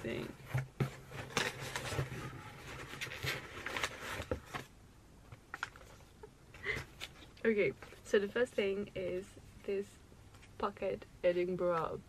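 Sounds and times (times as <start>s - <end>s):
paper packaging rustling: 0.1s - 4.7s.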